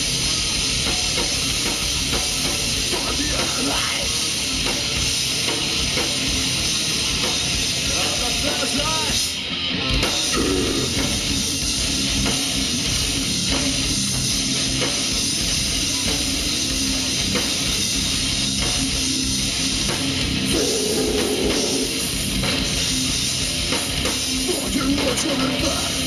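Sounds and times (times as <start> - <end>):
metalcore band playing: 0.0 - 26.0.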